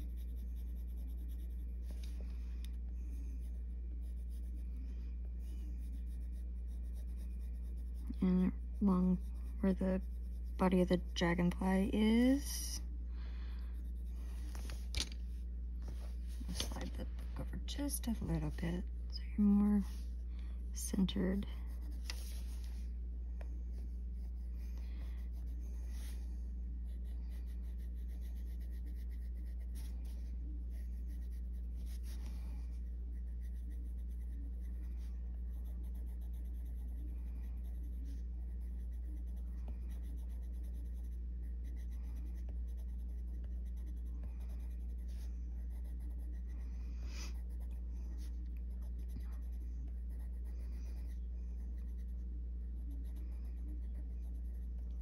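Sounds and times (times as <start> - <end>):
pencil scratching on paper: 0.0 - 12.8, 13.7 - 15.1, 20.8 - 22.9, 23.7 - 55.0
steady low hum: 0.0 - 55.0.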